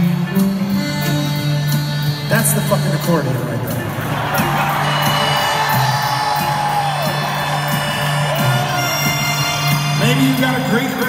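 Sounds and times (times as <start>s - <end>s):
crowd cheering and whooping: 4.0s - 9.5s
shrill whoop: 4.9s - 9.1s.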